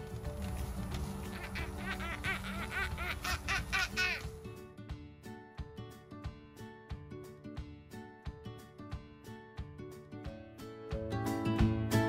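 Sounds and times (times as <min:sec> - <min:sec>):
background music: 0:00.0 - 0:12.0
child laughing: 0:01.2 - 0:04.3.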